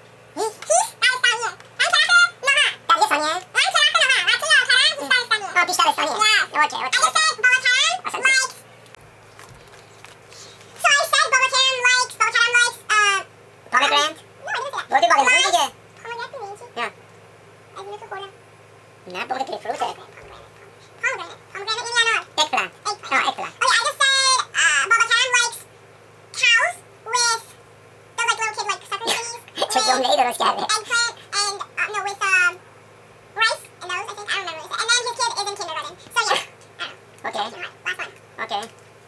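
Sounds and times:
faint low hum: 0.0s - 39.0s
girl's high-pitched voice: 0.4s - 8.6s, 10.8s - 16.9s, 17.8s - 18.3s, 19.1s - 25.7s, 26.4s - 27.6s, 28.2s - 32.6s, 33.4s - 38.7s.

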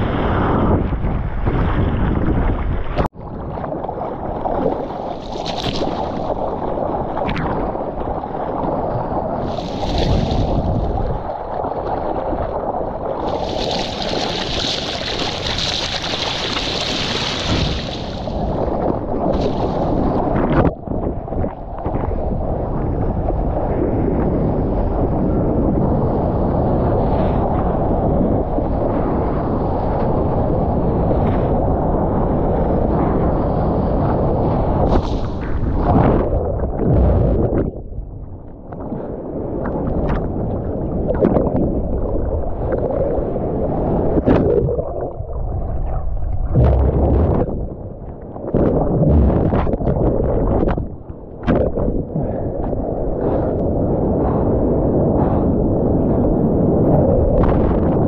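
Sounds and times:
seawater rushing and splashing: 0.0s - 58.0s
wind buffeting microphone: 0.0s - 58.0s.

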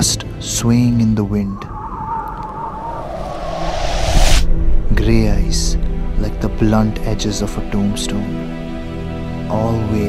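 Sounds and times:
wavering high tone: 1.3s - 5.4s
rising hiss-like whoosh: 1.4s - 6.7s.

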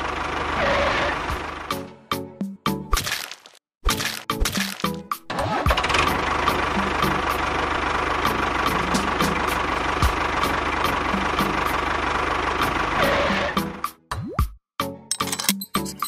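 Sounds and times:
vehicle engine running: 0.0s - 2.3s, 4.0s - 13.9s.

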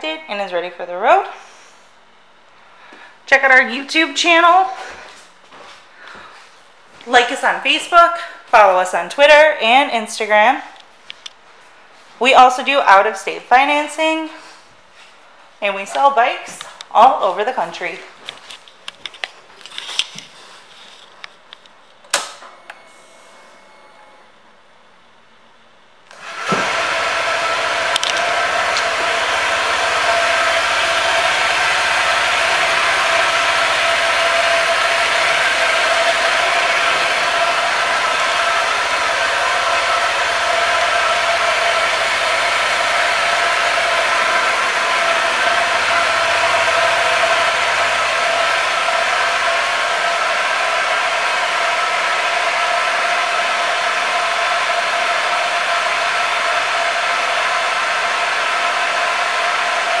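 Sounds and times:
steady mechanical whirr: 22.0s - 24.6s, 26.1s - 60.0s.

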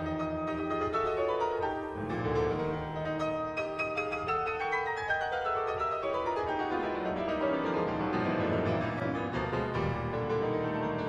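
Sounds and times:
solo classical piano: 0.0s - 11.0s.

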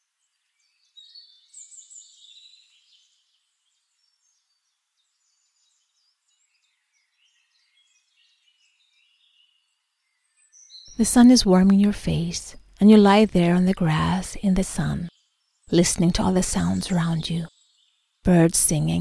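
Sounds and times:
faint birdsong chirps: 0.0s - 11.5s, 13.7s - 19.0s.

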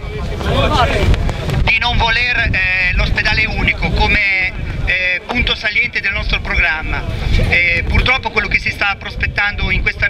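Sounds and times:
man speaking through megaphone: 0.0s - 10.0s
wind buffeting microphone: 0.0s - 10.0s.

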